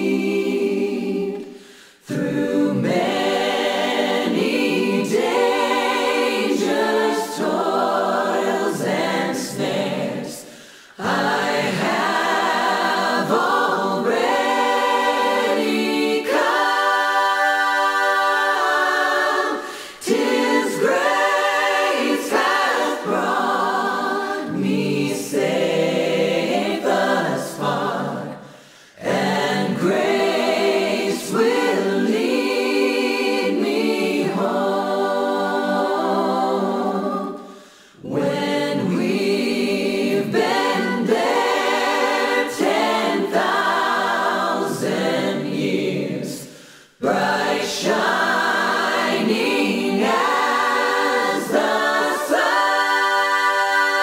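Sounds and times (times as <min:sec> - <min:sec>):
choir singing a cappella: 0:00.0 - 0:54.0.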